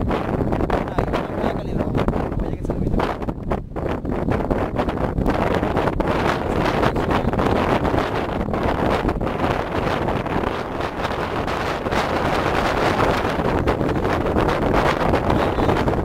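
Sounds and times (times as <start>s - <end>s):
wind blowing across microphone: 0.0s - 16.0s.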